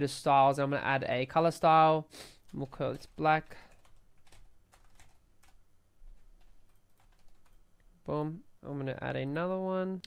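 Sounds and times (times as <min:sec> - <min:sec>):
computer keyboard typing: 0:02.5 - 0:07.6.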